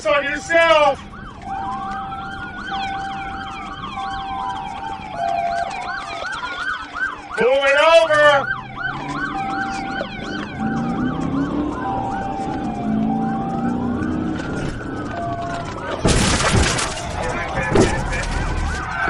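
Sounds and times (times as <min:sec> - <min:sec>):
police siren wail: 0:00.0 - 0:19.0
police siren yelp: 0:00.0 - 0:19.0.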